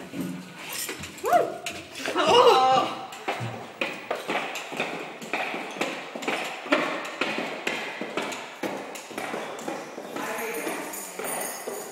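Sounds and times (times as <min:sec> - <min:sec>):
woman squealing: 0:01.2 - 0:03.0.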